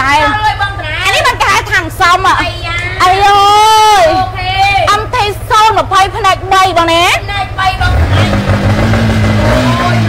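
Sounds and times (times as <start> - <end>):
motorcycle engine revving: 3.0 - 10.0.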